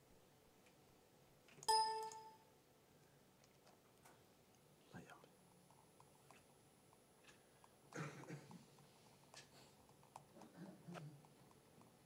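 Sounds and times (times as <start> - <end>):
computer volume ding: 1.7 - 2.4.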